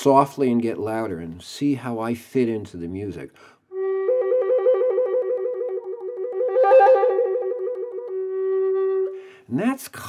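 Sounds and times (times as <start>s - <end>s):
flute trilling: 3.7s - 9.3s.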